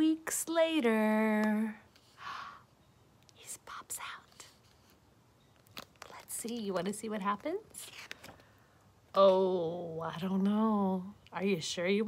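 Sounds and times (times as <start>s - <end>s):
woman whispering: 3.4s - 4.6s.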